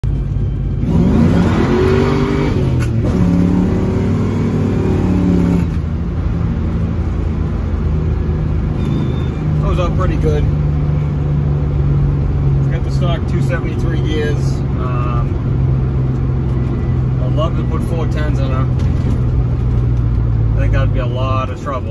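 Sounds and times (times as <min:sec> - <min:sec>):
car engine revving: 0:00.7 - 0:21.7.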